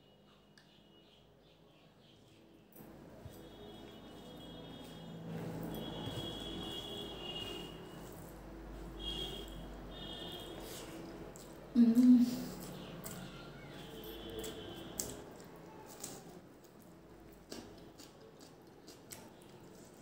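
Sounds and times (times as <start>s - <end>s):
chewing: 10.4s - 20.0s.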